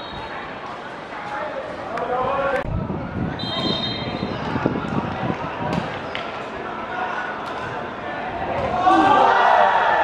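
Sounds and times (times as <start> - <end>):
referee's whistle blast: 3.4 - 4.2.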